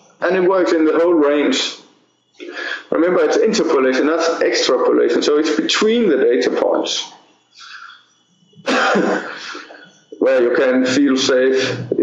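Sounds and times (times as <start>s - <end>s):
man coughing: 8.6s - 9.9s.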